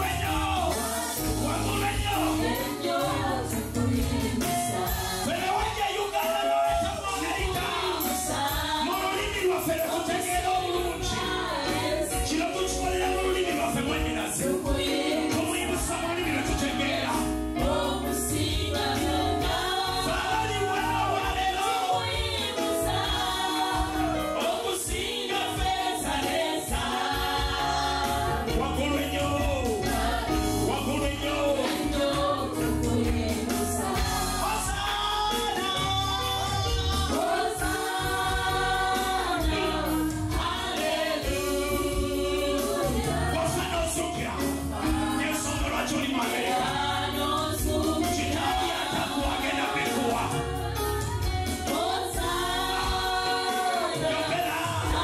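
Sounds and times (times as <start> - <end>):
man singing lead: 0.0 - 3.9, 5.2 - 17.3, 28.1 - 38.8, 39.5 - 50.5
band with bass and beat: 0.0 - 55.0
women singing together: 0.0 - 55.0.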